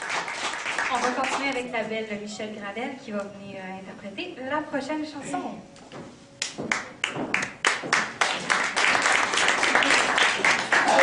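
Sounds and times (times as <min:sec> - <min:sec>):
audience applause: 0:00.0 - 0:01.4, 0:07.4 - 0:11.0.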